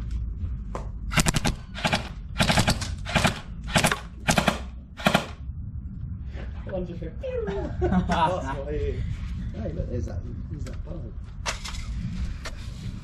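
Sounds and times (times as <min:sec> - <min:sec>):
airsoft gun full-auto bursts: 0:01.1 - 0:05.4.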